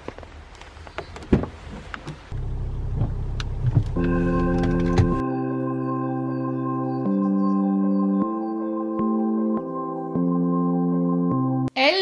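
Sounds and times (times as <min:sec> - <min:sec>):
car engine rumble from inside: 0:01.0 - 0:05.2.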